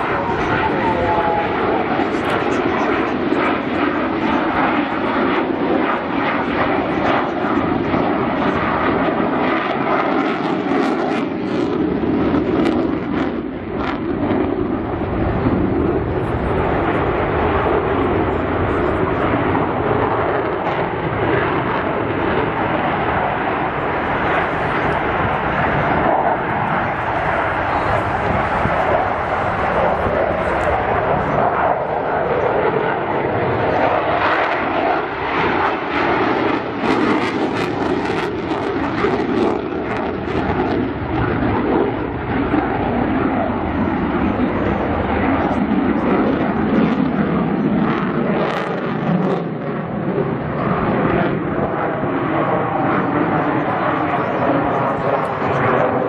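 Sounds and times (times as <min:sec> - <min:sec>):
jet engine noise: 0:00.0 - 0:56.0.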